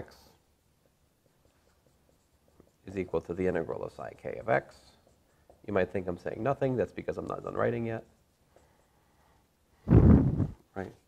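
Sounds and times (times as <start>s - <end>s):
marker tapping on whiteboard: 0.8s - 3.6s, 4.4s - 6.5s
man speaking: 2.8s - 8.2s, 10.7s - 11.0s.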